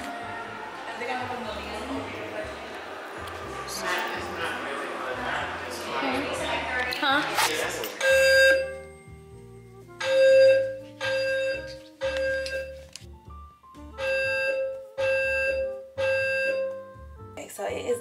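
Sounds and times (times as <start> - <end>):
smoke detector alarm beeps: 8.0 - 8.9, 10.0 - 12.9, 14.0 - 17.0.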